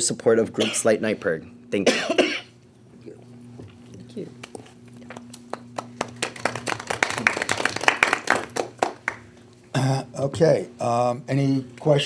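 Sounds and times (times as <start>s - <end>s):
people applauding: 5.1s - 9.3s.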